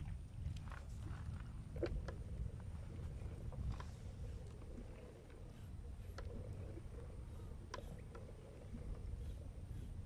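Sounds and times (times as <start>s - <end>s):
faint clicks and knocks from kayak: 0.0s - 10.0s
rumble of wind and water: 0.0s - 10.0s.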